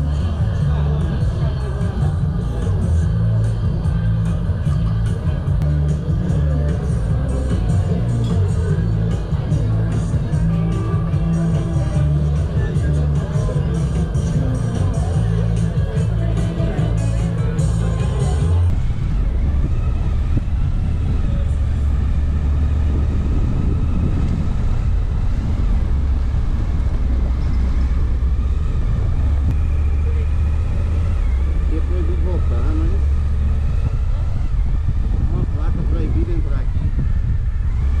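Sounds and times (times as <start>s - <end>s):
motorcycle engine rumbling: 0.0s - 38.0s.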